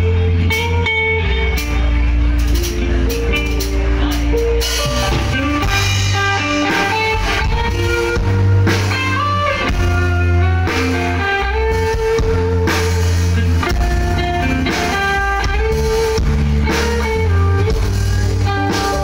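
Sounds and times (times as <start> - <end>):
drum kit beat: 0.0 - 19.0
electric guitar: 0.0 - 19.0
heavy low bass line: 0.0 - 19.0.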